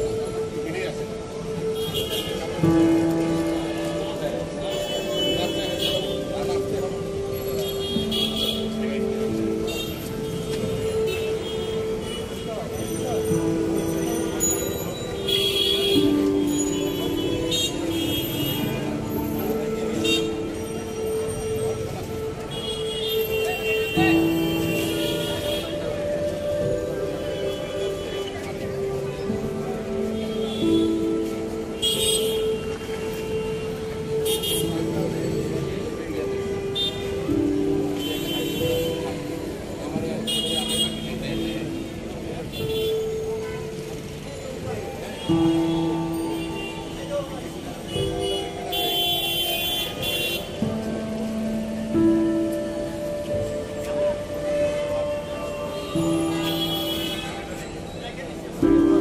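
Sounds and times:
crowd chatter: 0.0 - 59.0
street traffic: 0.0 - 59.0
vehicle horns: 4.6 - 6.4, 7.6 - 8.8, 31.8 - 35.1, 40.1 - 41.8, 47.8 - 50.7, 54.6 - 57.6.

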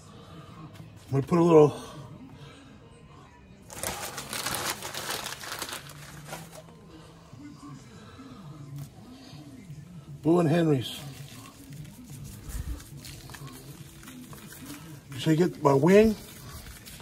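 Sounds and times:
newspaper crinkling and rustling: 3.7 - 6.8, 10.7 - 17.0.

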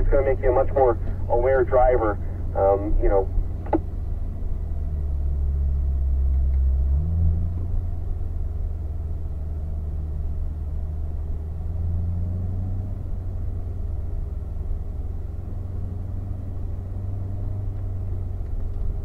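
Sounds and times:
car engine humming: 0.0 - 19.0.

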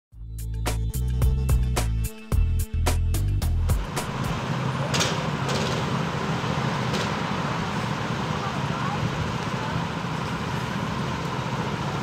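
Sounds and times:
go-kart engines rumbling: 3.8 - 12.0.

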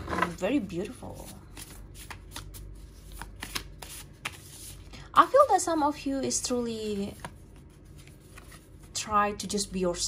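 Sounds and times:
cards being shuffled: 1.2 - 4.9, 6.9 - 9.0.

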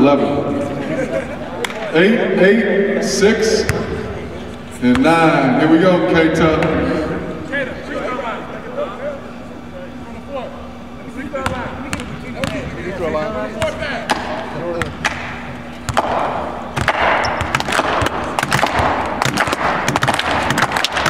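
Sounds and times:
crowd chatter: 0.0 - 16.8.

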